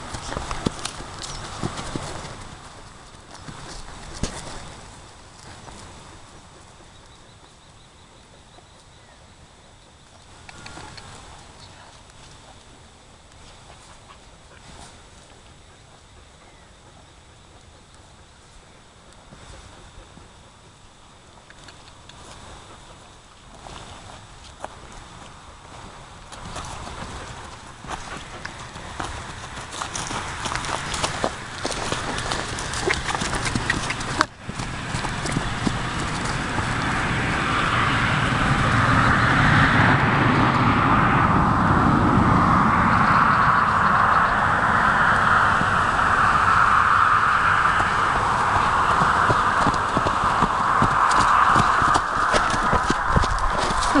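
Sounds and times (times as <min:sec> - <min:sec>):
loud steady rushing noise: 0:00.0 - 0:06.6, 0:25.5 - 0:54.0
horse hoofbeats on dry grass: 0:00.0 - 0:06.9, 0:22.5 - 0:39.4, 0:45.3 - 0:54.0.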